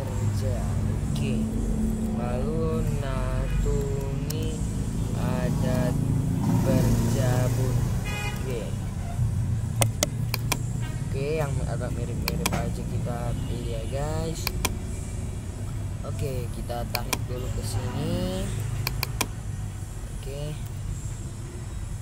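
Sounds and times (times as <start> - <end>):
indistinct voices talking: 0.0 - 21.2
steady low rumble: 0.0 - 21.4
sharp clicks: 9.8 - 10.7, 12.2 - 12.8, 14.4 - 14.8, 16.9 - 17.3, 18.6 - 19.4.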